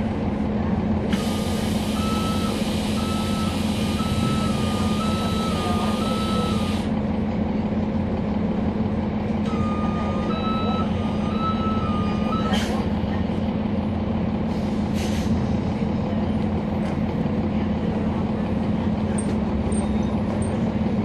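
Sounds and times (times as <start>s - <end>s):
bus diesel engine drone: 0.0s - 21.0s
beeping warning tone: 2.0s - 6.8s, 9.5s - 12.5s.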